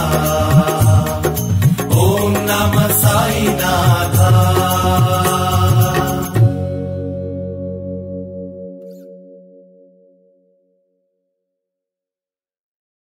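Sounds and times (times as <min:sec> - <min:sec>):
devotional chanted singing: 0:00.0 - 0:06.8
instrumental accompaniment: 0:00.0 - 0:10.6.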